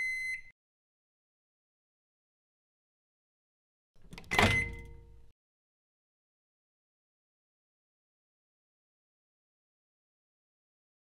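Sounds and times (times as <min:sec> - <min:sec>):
microwave door latch click: 0:04.1 - 0:05.1
microwave door clunk: 0:04.1 - 0:05.2.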